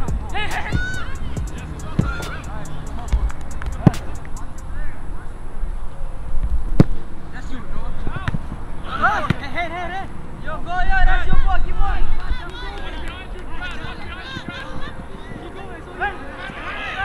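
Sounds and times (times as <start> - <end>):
players shouting: 0.0 - 5.0, 8.0 - 17.0.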